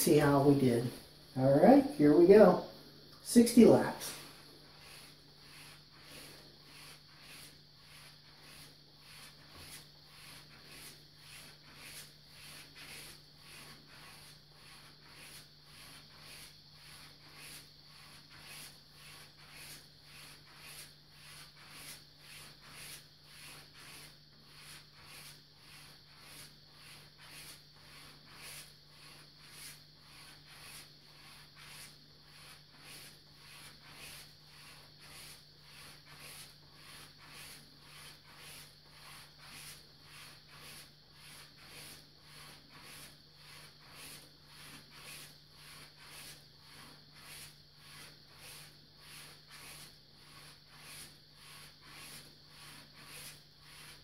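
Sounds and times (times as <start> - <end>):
razor swishing on leather strop: 4.1 - 54.0.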